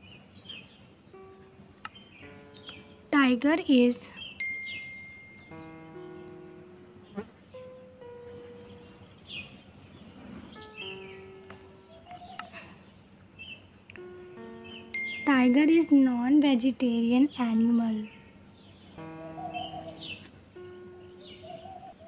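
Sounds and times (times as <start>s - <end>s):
bird chirps: 0.0s - 3.2s, 3.9s - 22.0s
soft chiming music: 0.0s - 12.8s, 13.4s - 22.0s.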